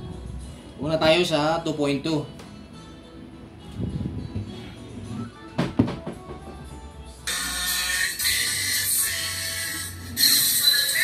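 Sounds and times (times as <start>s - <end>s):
thin treble-heavy music: 0.0s - 11.0s
handling knocks: 5.6s - 6.8s.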